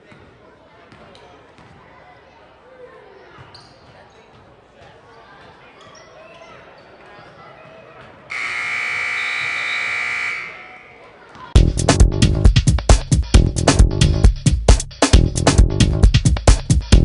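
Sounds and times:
crowd voices: 0:00.0 - 0:11.9
scoreboard buzzer: 0:08.3 - 0:11.0.

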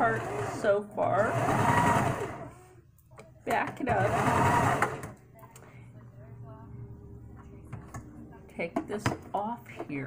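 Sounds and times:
sewing machine stitching: 0:00.0 - 0:02.5, 0:03.9 - 0:05.1
low steady hum: 0:04.7 - 0:10.0.

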